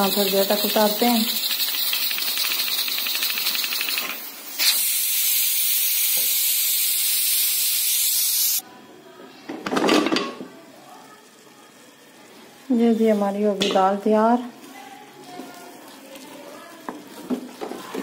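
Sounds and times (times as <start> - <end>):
pressure cooker steam hissing: 0.0 - 8.6.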